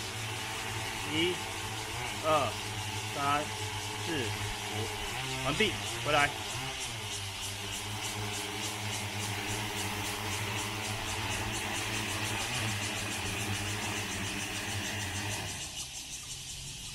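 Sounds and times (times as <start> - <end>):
drone rotors humming: 0.0 - 16.9.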